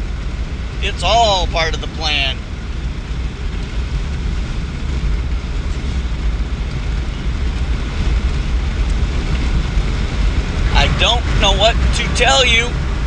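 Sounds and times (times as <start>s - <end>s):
vehicle cabin road rumble: 0.0s - 13.0s
wind and tyre hiss: 0.0s - 13.0s.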